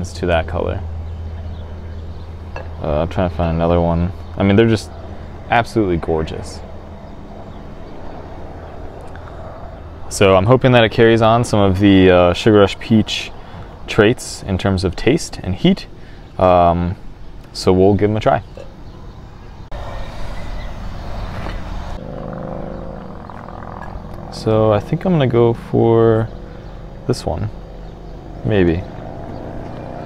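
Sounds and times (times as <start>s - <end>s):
low outdoor rumble: 0.0s - 30.0s.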